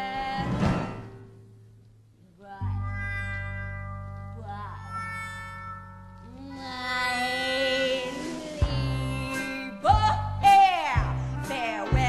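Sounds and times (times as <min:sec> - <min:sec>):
stage band music: 0:02.8 - 0:06.3.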